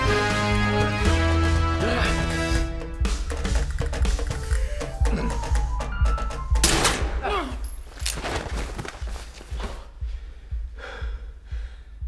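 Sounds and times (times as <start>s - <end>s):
low pulsing music: 0.0s - 12.0s
heavy gasping breaths: 9.5s - 12.0s.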